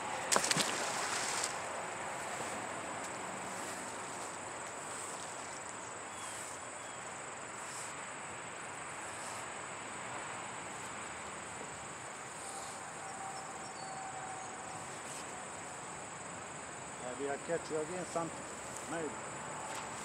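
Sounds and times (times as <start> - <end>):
insects chirring: 0.0 - 20.0.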